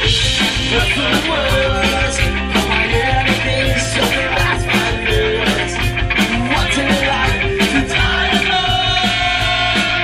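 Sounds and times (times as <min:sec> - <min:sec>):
distorted electric guitars: 0:00.0 - 0:10.0
rock band playing live: 0:00.0 - 0:10.0.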